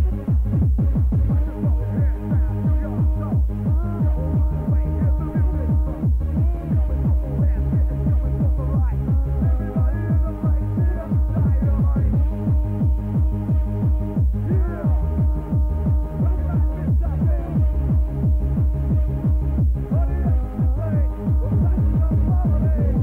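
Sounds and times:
electronic dance music: 0.0 - 23.0.

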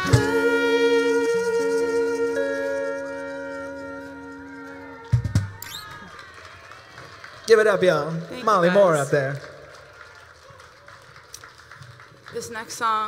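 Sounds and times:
band chord with trumpet: 0.0 - 5.6.

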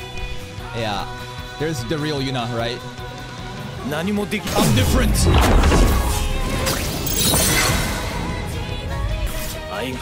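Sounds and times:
dramatic music: 1.3 - 10.0.

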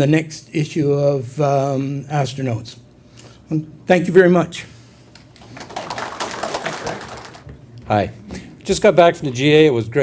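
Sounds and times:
audience applauding: 5.4 - 7.5.

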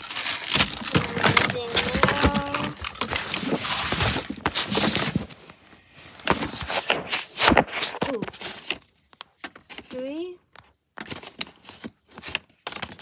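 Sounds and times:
toys rummaged in plastic bin: 0.0 - 13.0.

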